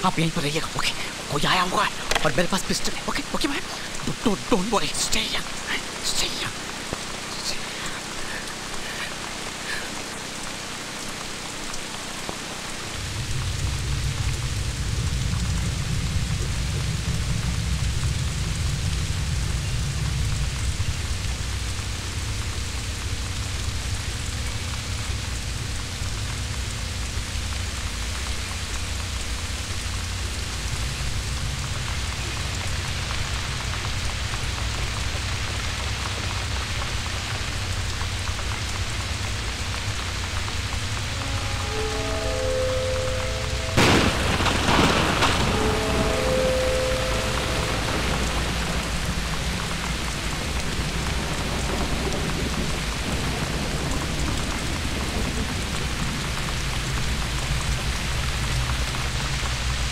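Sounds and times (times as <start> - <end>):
heavy rain on windows: 0.0 - 59.9
deep low rumble: 37.8 - 59.0.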